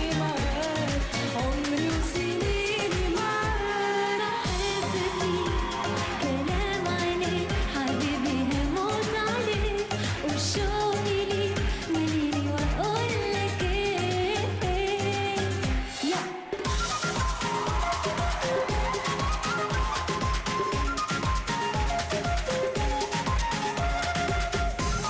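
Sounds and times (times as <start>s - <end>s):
woman singing pop song: 0.0s - 25.0s
backing band: 4.5s - 9.0s, 16.6s - 25.0s
steady kick drum beat: 4.5s - 9.9s, 16.7s - 25.0s
bass line: 4.5s - 15.8s.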